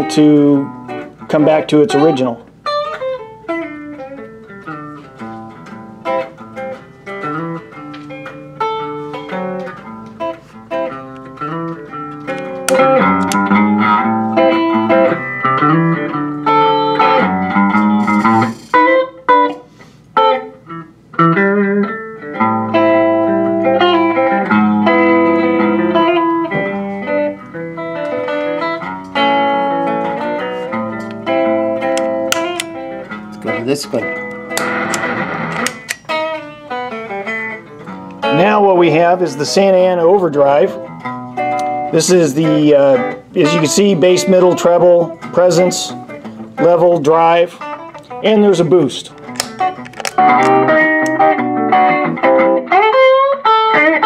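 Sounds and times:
electric guitar notes and chords: 0:00.0 - 0:54.0.

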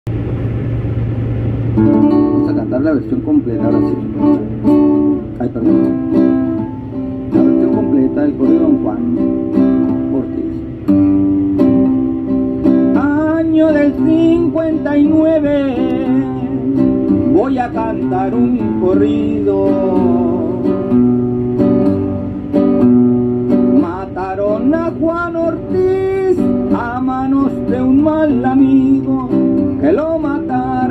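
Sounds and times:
car road and engine drone: 0:00.0 - 0:30.9
low hum: 0:00.1 - 0:07.6
guitar chord ringing: 0:00.1 - 0:30.9.

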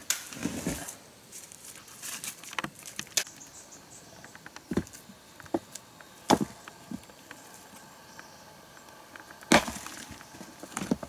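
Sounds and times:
stones knocking and scraping: 0:04.2 - 0:07.6, 0:09.2 - 0:11.0
heavy stone knocking on stones: 0:06.3 - 0:07.0, 0:09.5 - 0:11.0.

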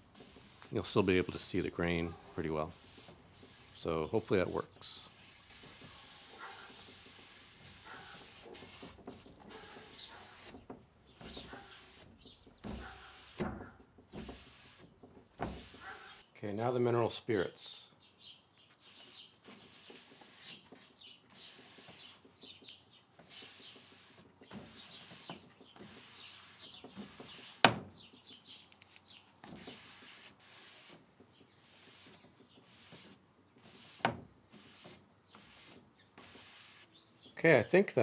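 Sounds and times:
paper towel wiping wood: 0:00.0 - 0:10.6, 0:11.2 - 0:13.5, 0:14.1 - 0:14.8, 0:15.4 - 0:16.2, 0:18.8 - 0:22.3, 0:23.2 - 0:27.6, 0:29.4 - 0:36.9.

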